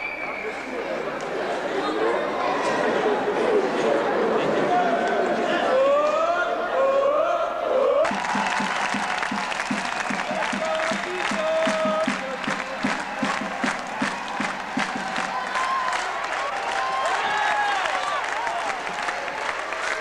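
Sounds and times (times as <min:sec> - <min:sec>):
rhythmic clapping: 0:08.0 - 0:20.0.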